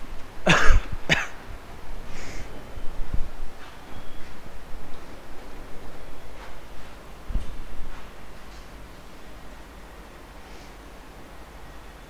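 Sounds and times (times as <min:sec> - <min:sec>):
man coughing: 0:00.5 - 0:01.4.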